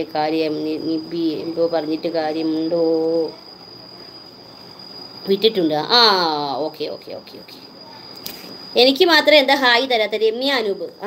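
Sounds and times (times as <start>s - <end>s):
woman's voice: 0.0s - 3.4s, 5.2s - 7.7s, 8.7s - 11.0s
high-pitched insect trill: 0.0s - 11.0s.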